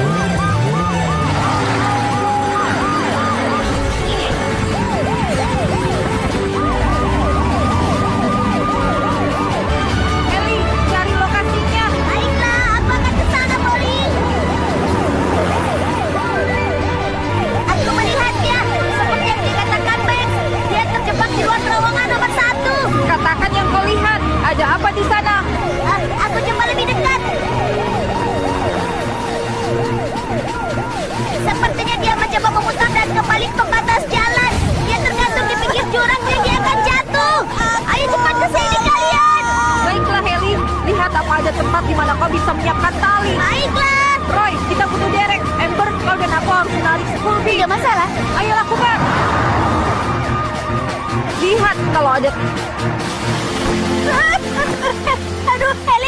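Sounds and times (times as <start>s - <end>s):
siren wailing: 0.0s - 56.0s
steady siren tone: 0.0s - 56.0s.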